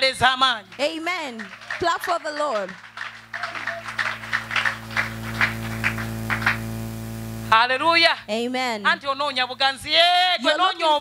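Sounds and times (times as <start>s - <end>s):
congregation clapping hands: 0.4s - 6.8s
steady low hum: 0.6s - 11.0s.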